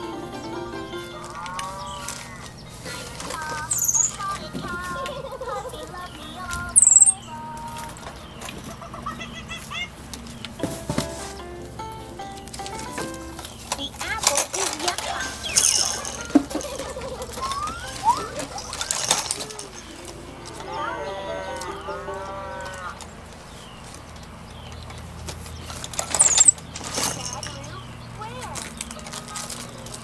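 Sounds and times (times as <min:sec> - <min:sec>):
plastic toys rattling and clicking: 0:01.2 - 0:08.8, 0:12.5 - 0:20.6, 0:23.3 - 0:30.0
squeaky chirps and whistled calls: 0:03.7 - 0:04.3, 0:06.7 - 0:07.4, 0:17.4 - 0:19.9, 0:26.0 - 0:26.7
arching squeals: 0:06.7 - 0:07.3, 0:25.9 - 0:27.7.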